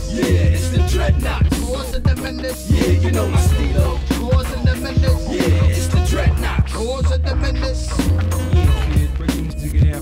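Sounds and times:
heavy bass line: 0:00.0 - 0:10.0
hip hop beat: 0:00.0 - 0:10.0.

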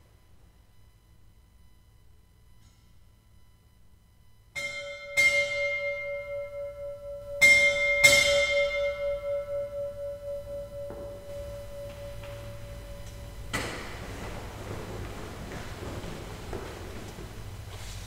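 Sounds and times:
bell ringing: 0:04.6 - 0:13.6.

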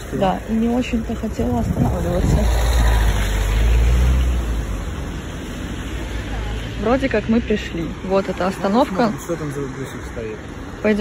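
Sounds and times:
car passing on wet road: 0:00.0 - 0:11.0.

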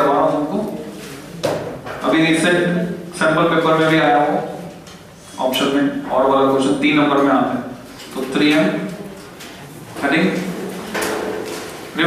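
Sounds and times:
man speaking: 0:05.3 - 0:09.0, 0:10.0 - 0:10.6.

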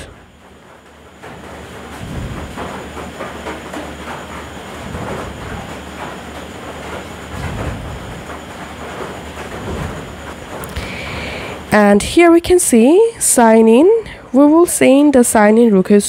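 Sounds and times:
faint clattering: 0:00.0 - 0:12.2
steady rumbling: 0:00.0 - 0:16.0.

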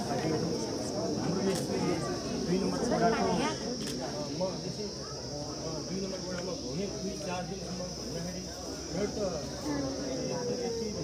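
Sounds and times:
high-pitched insect chorus: 0:00.0 - 0:11.0
people talking in background: 0:00.0 - 0:11.0.

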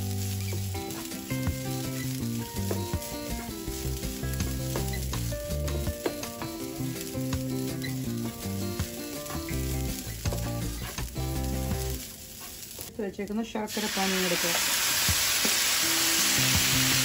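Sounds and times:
instrumental background music: 0:00.0 - 0:12.9, 0:14.3 - 0:17.0.

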